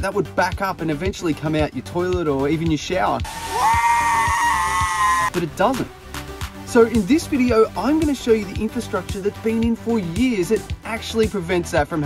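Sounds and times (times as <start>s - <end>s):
music: 0.0s - 12.0s
person screaming: 3.3s - 5.3s.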